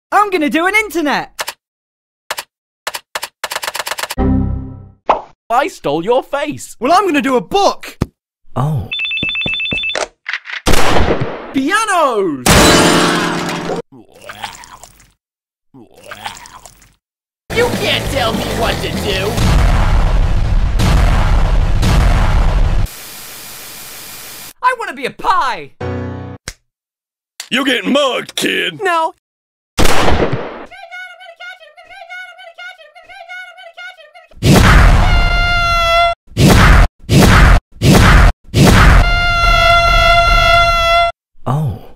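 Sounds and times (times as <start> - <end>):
cartoon explosion: 19.4 - 22.9, 34.4 - 35.6, 36.4 - 40.6
tv static hiss: 22.9 - 24.5.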